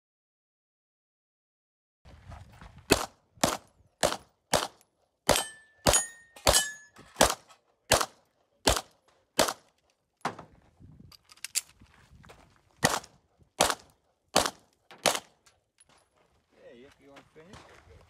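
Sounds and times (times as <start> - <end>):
pistol shots: 2.9 - 9.7, 12.8 - 15.4
thin metallic ring: 5.4 - 7.1.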